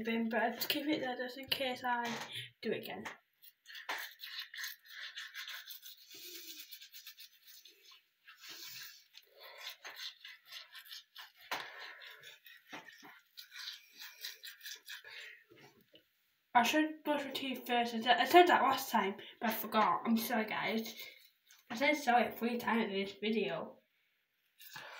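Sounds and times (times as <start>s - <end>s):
electric toothbrush brushing teeth: 3.4s - 15.4s.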